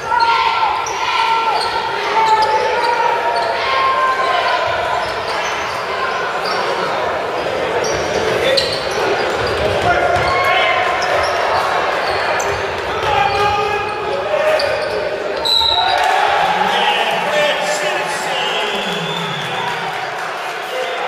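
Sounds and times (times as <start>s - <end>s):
echoing crowd voices: 0.0s - 21.0s.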